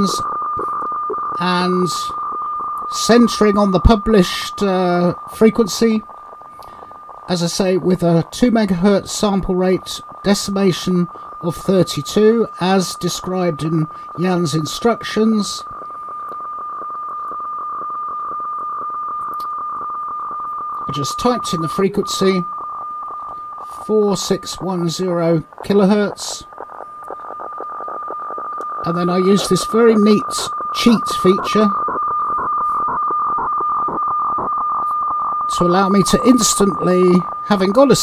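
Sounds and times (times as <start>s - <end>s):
radio fax signal high tone: 0.0s - 38.0s.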